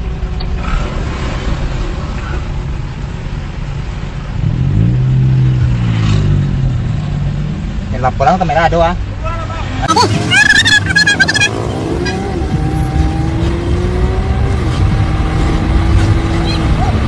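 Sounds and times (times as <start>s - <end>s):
deeper engine hum: 0.0s - 17.0s
engine and road rumble: 0.0s - 17.0s.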